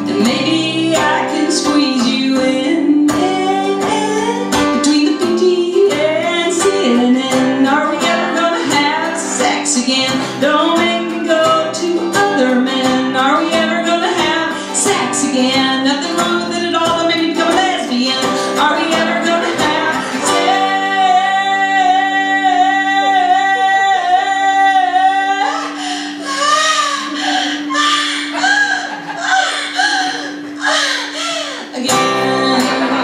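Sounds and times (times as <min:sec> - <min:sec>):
strummed acoustic guitar: 0:00.0 - 0:33.0
woman singing: 0:00.0 - 0:33.0.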